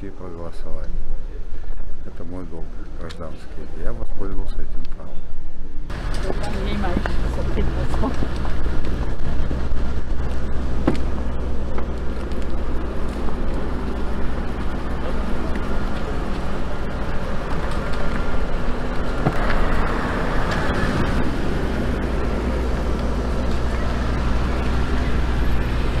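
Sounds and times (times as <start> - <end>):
steady low rumble: 0.0 - 26.0
cars driving off: 5.9 - 26.0.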